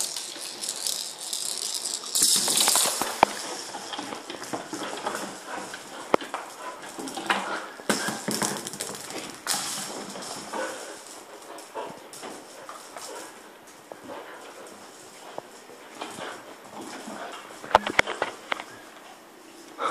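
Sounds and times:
ball rattling and rolling on wood: 0:00.0 - 0:18.8
dog claws scuffling: 0:00.0 - 0:19.1.

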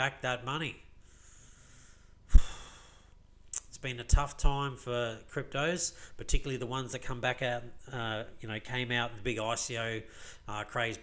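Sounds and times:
man sighing: 0:02.3 - 0:03.2.

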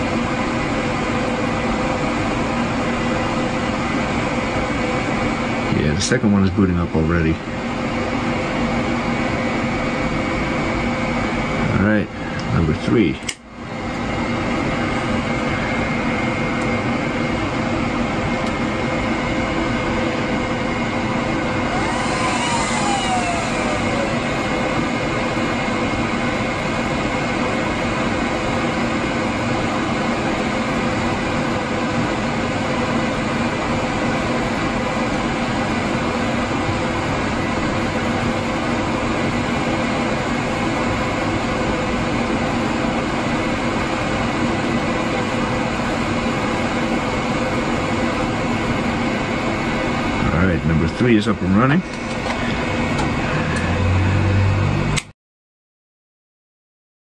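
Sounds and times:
cooling fans whirring: 0:00.0 - 0:55.1
rising and falling whine: 0:13.9 - 0:27.4, 0:51.6 - 0:55.1.

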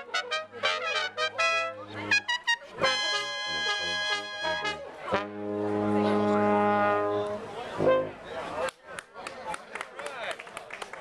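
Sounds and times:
brass quintet holding a chord: 0:00.0 - 0:08.1.

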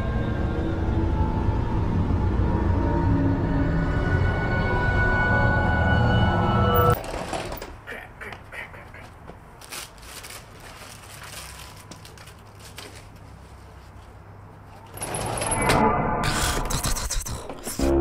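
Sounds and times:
sliding glass door opening: 0:07.0 - 0:07.8, 0:14.9 - 0:16.0.

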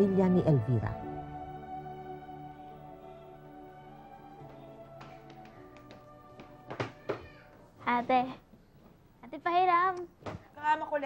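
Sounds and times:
soft background score: 0:00.0 - 0:11.0.

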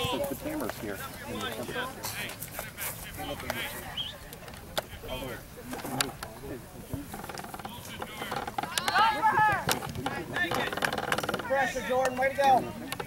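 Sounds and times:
voices shouting: 0:08.4 - 0:12.9.

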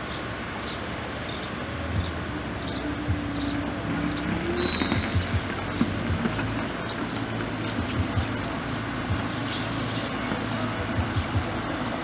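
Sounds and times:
distant machinery engine hum: 0:00.0 - 0:12.0.

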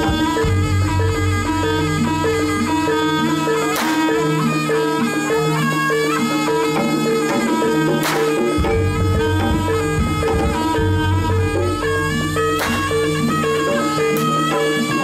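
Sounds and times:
drums: 0:00.0 - 0:15.0
metallic percussion notes: 0:00.0 - 0:15.0
reedy wind instrument melody: 0:00.0 - 0:15.0
whip cracks: 0:03.8 - 0:04.1, 0:08.0 - 0:08.3, 0:12.6 - 0:12.9.

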